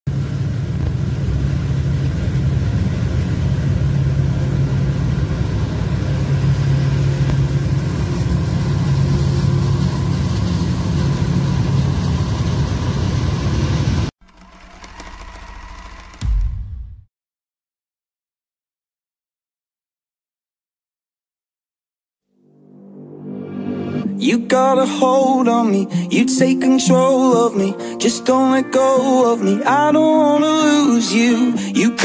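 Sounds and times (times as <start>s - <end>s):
engine hum: 0.1s - 16.5s.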